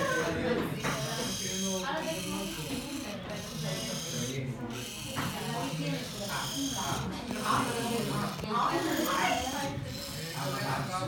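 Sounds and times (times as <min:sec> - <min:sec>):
people talking: 0:00.0 - 0:11.0
small electric motor buzzing: 0:00.0 - 0:11.0.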